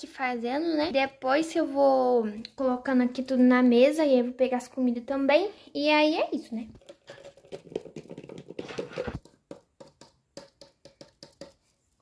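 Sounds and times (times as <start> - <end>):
plastic and cardboard rustling: 6.8 - 9.2.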